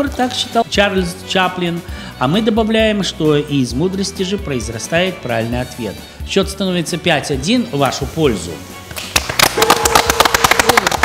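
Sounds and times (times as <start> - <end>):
small group clapping: 8.9 - 11.0.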